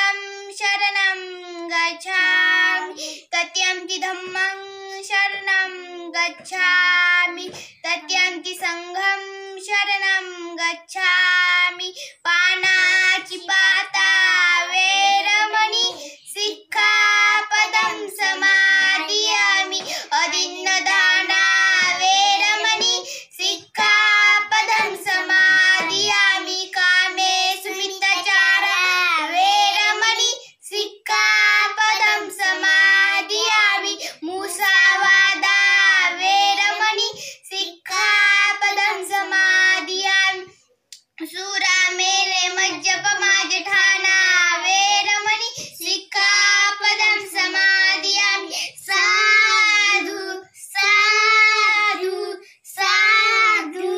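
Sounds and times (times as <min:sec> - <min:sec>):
children chanting: 0:12.4 - 0:40.6, 0:41.5 - 0:53.9.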